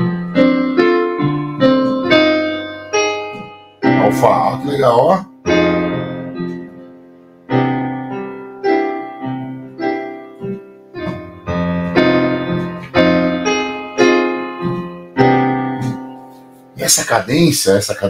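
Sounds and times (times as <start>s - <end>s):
digital piano chords: 0.0s - 18.0s.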